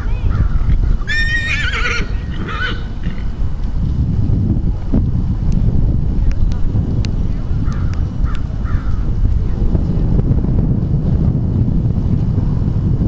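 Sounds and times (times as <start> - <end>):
horse whinnying: 1.0 - 3.2.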